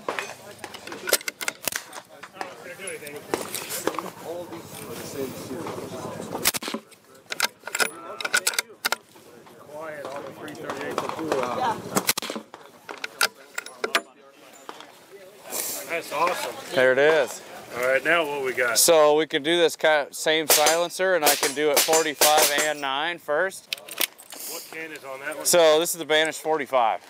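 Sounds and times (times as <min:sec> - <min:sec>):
voices talking: 0:00.0 - 0:27.0
suppressed rifle shots: 0:20.5 - 0:22.7.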